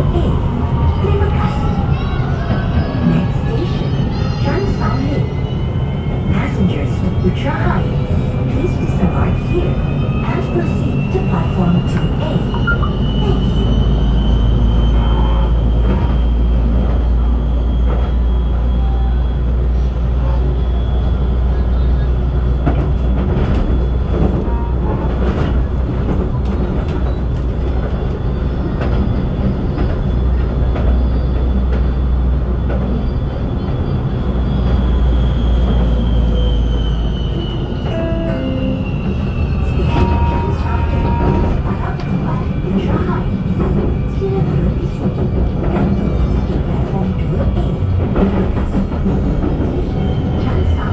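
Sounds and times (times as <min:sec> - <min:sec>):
train wheels rumbling on rail: 0:00.0 - 0:50.9.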